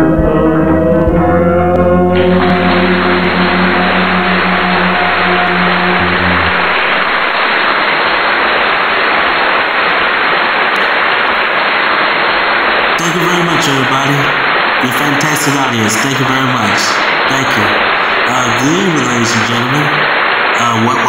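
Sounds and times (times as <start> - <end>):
song held notes: 0.0 - 7.5
loud rushing hiss: 2.2 - 21.0.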